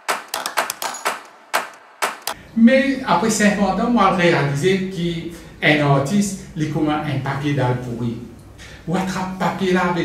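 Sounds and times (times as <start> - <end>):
typewriter typing clicks: 0.0 - 2.4.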